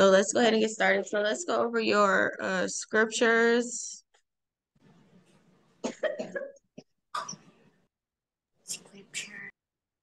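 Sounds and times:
person coughing: 5.8s - 7.4s.

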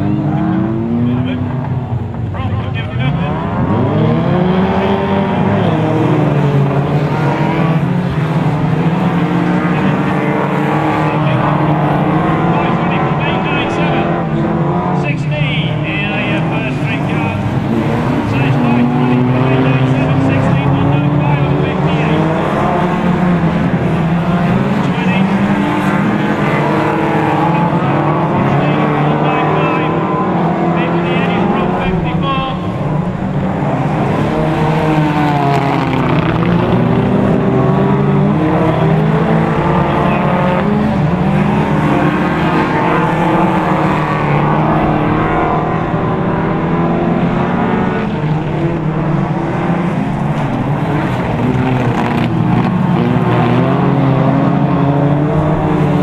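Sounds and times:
racing car engines revving: 0.0s - 56.0s.

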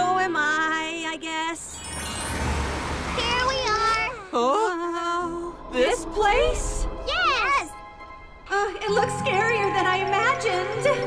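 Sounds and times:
cartoon background music: 1.6s - 11.0s
high wordless character vocals: 3.2s - 7.8s, 8.5s - 11.0s.

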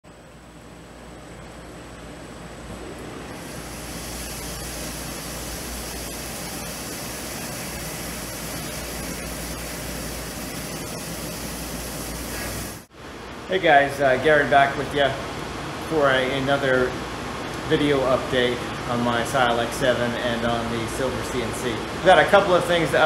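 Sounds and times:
milling machine cutting metal: 3.4s - 12.8s
coolant spray hissing: 3.4s - 12.9s.

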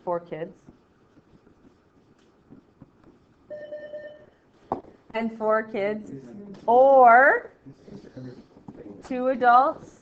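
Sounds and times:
steady electronic beep: 3.5s - 4.4s.

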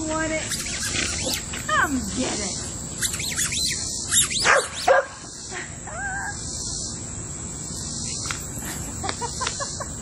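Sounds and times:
puppy yipping: 3.0s - 5.2s.

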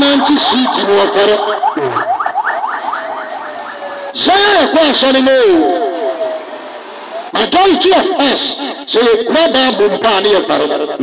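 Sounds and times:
electronic siren yelping: 0.0s - 8.2s.

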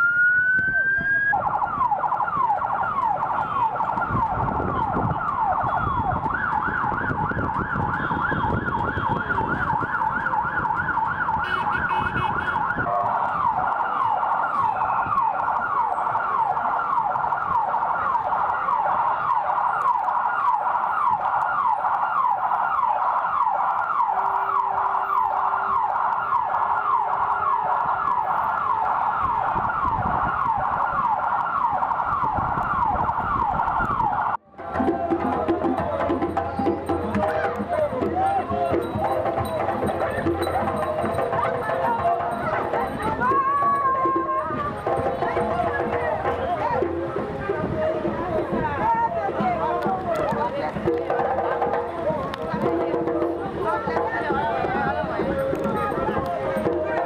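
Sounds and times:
vehicle siren fast yelp: 0.0s - 57.0s.

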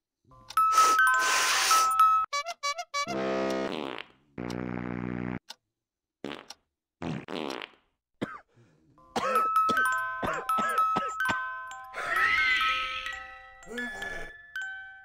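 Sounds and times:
chiming synth notes: 9.0s - 15.0s.

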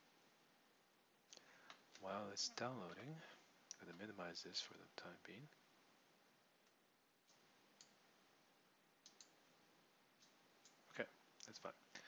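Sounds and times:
faint computer mouse clicks: 6.6s - 8.0s, 9.0s - 9.4s.

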